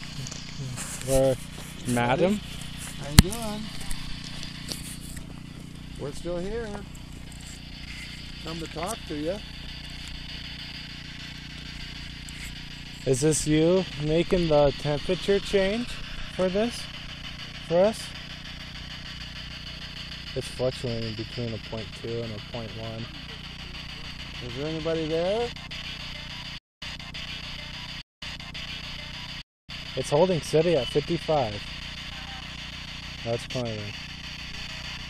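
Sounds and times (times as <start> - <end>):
high-pitched buzz: 0.0 - 35.0
low hum: 0.0 - 35.0.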